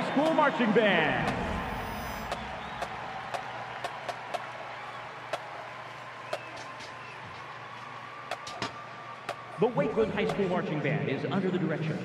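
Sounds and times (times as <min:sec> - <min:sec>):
stadium crowd applauding: 0:00.0 - 0:10.8
individual claps: 0:02.3 - 0:07.5, 0:08.3 - 0:09.5.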